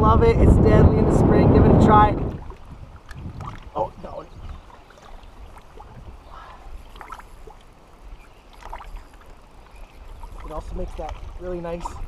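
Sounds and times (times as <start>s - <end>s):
wind and lake water rumble: 0.0s - 12.0s.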